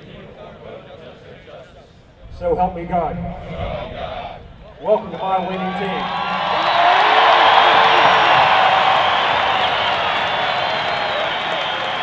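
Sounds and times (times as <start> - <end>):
stadium crowd cheering and applauding: 5.0 - 12.0.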